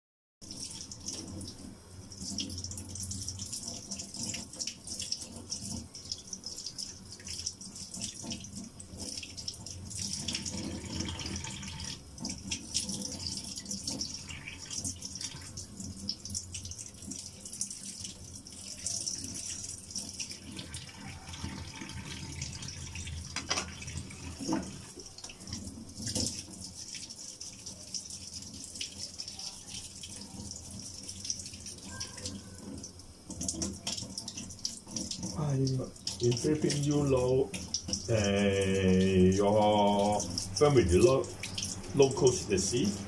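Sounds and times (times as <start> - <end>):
tap water running into sink: 0.4 - 43.0
water splashes: 0.4 - 43.0.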